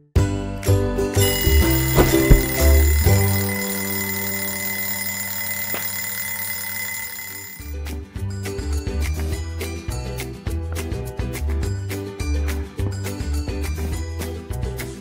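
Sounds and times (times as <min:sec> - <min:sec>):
cartoon alarm clock bell ringing: 0:01.2 - 0:07.9
music with light percussive hits: 0:08.0 - 0:15.0.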